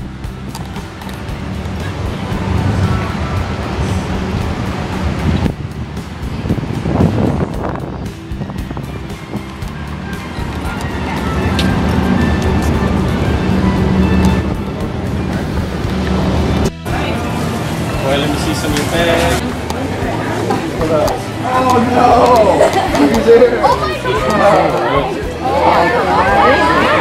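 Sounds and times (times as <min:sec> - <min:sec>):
music playing: 0:00.0 - 0:27.0
voices: 0:06.0 - 0:27.0.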